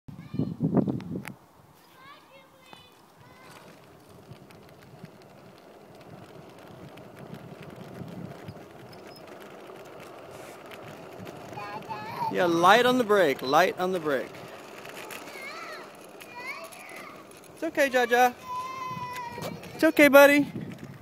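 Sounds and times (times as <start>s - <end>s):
low outdoor rustle: 0.1s - 21.0s
footsteps on asphalt: 0.8s - 21.0s.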